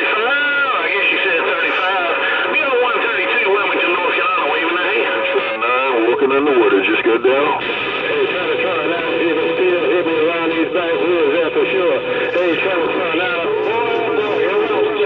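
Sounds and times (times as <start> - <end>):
garbled radio voices: 0.0 - 15.0
steady high radio whistle: 0.0 - 15.0.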